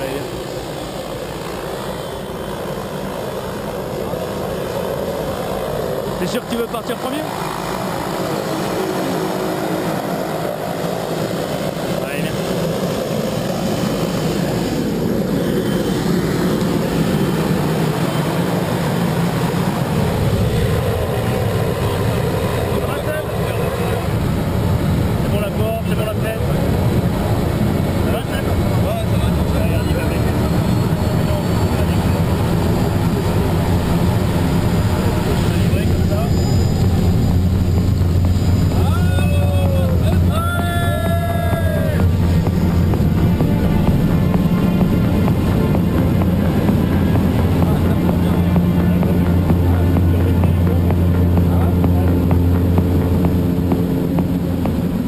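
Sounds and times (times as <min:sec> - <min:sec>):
small plane engine drone: 0:00.0 - 0:55.0
voices: 0:00.0 - 0:55.0.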